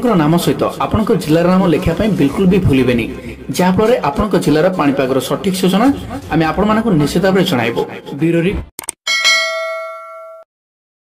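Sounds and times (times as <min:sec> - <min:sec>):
bell-like ding: 0:09.1 - 0:10.5.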